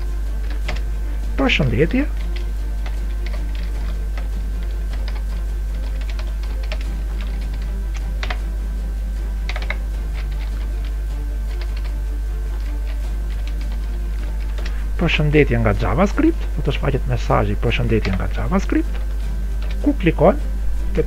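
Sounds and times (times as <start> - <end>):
steady low hum: 0.0 - 21.0
typing on computer keyboard: 2.2 - 8.4, 9.5 - 10.7, 11.5 - 12.0.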